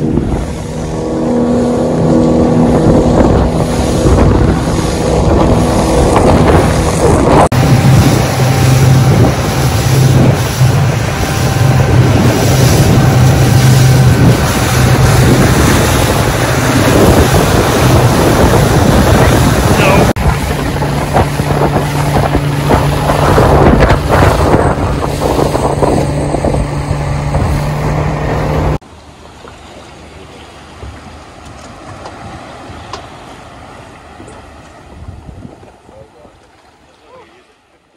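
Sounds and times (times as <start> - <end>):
wind buffeting microphone: 0.0 - 28.8, 30.2 - 36.8
power boat engine: 0.0 - 37.9
rushing water: 0.0 - 37.9.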